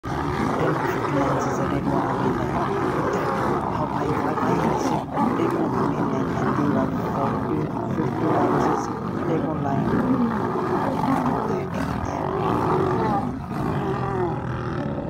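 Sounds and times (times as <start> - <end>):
lionesses growling and roaring: 0.0 - 15.0.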